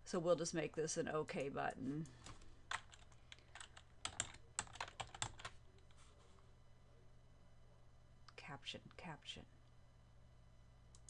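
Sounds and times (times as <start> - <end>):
typing on a computer keyboard: 2.2 - 5.6.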